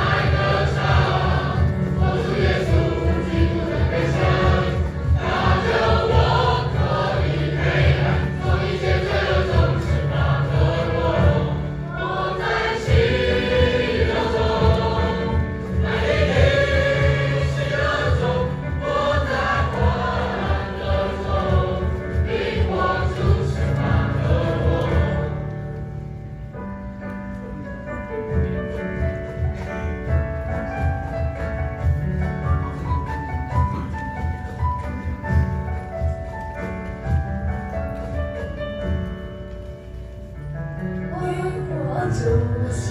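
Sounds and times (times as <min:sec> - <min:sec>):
children's choir singing a hymn: 0:00.0 - 0:26.1.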